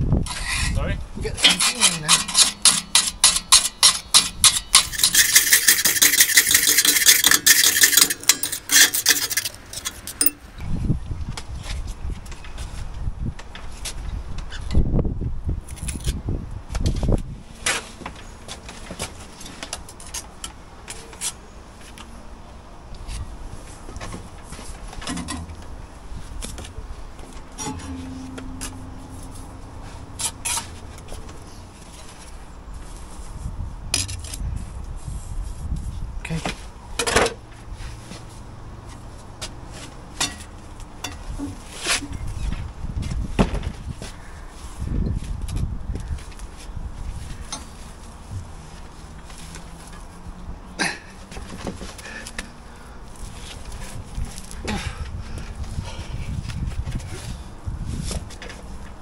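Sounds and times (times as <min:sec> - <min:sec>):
hand tools scraping on brickwork: 0:00.2 - 0:00.8, 0:01.4 - 0:10.4, 0:27.5 - 0:31.1.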